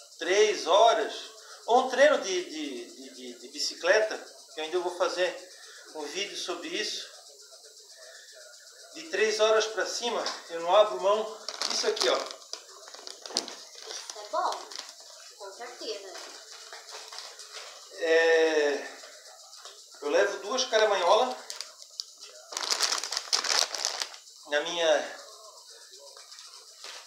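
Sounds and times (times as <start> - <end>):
man's voice: 8.9 - 13.9, 20.0 - 22.6
plastic pouch crinkling: 11.5 - 15.0, 21.4 - 24.2.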